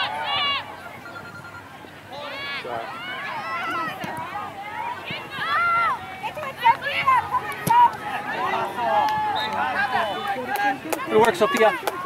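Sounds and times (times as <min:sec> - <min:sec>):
people shouting: 0:02.2 - 0:12.0.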